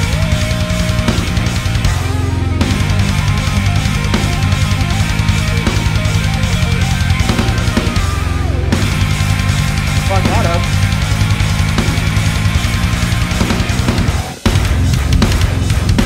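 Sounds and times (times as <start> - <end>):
driving drum kit: 0.0 - 16.0
electric guitar: 0.0 - 16.0.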